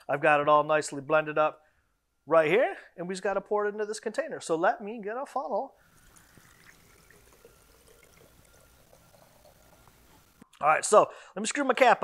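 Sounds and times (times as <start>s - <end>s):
liquid trickling through funnel: 5.8s - 10.4s.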